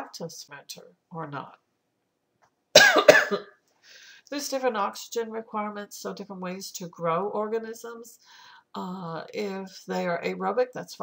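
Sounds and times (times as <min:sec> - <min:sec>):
person coughing: 0:02.8 - 0:03.6.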